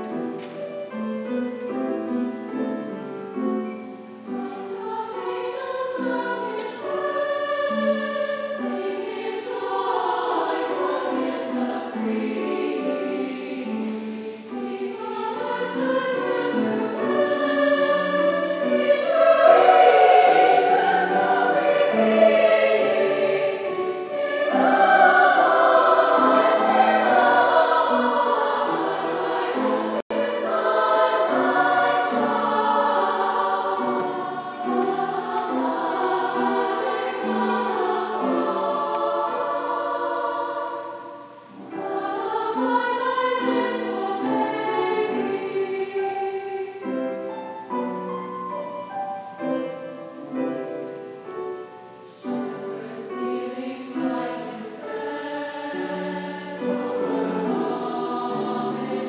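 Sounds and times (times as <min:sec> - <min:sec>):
large choir singing: 0:00.0 - 0:59.0.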